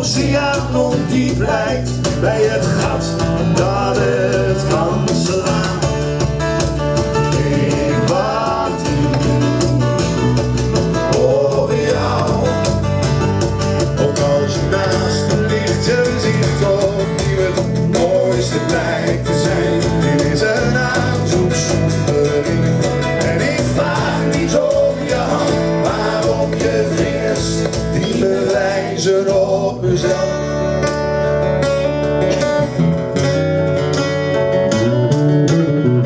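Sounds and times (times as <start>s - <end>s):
voices singing: 0.0s - 9.9s, 10.8s - 13.0s, 13.8s - 30.7s
bass guitar: 0.0s - 36.0s
strummed acoustic guitars: 0.0s - 36.0s.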